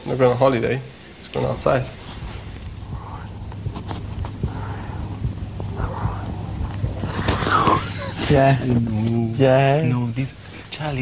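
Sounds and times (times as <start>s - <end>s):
steady low hum: 0.0s - 11.0s
muffled voices: 1.2s - 11.0s.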